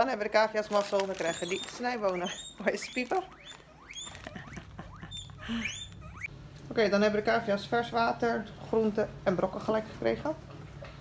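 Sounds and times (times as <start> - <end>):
guinea pigs squealing: 0.8 - 6.3.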